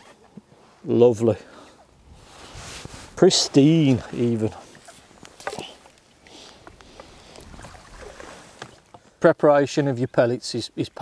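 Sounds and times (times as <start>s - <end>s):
faint water splashing: 1.4s - 9.3s.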